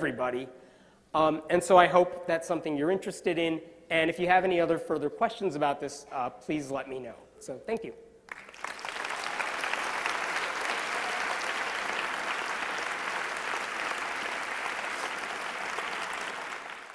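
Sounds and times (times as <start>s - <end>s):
audience applauding: 8.3s - 16.9s.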